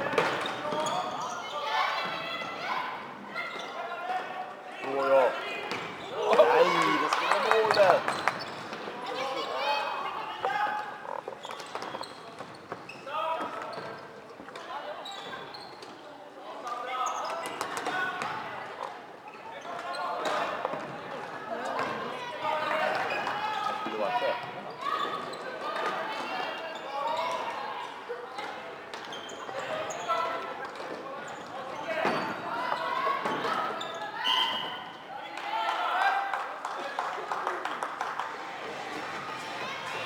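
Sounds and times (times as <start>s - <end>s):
players shouting: 4.8s - 8.0s.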